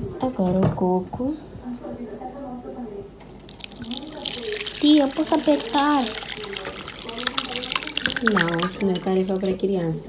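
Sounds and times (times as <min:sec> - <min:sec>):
water splashing into strainer: 0:03.2 - 0:10.0.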